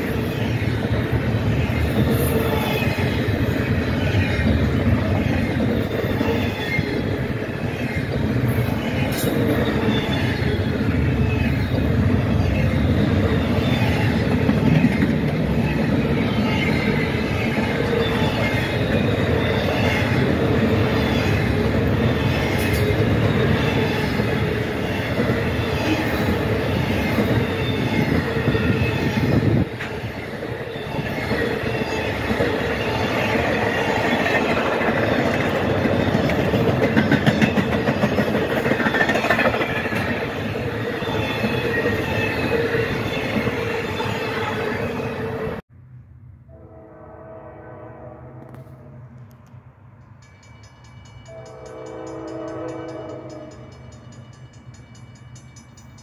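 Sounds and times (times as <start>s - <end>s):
steel wheels rolling on rail: 0.0s - 45.6s, 48.4s - 56.0s
train wheel squeal: 0.0s - 45.6s, 50.0s - 56.0s
clickety-clack over rail joints: 7.8s - 10.4s, 13.6s - 16.2s, 17.4s - 24.4s, 31.0s - 42.6s.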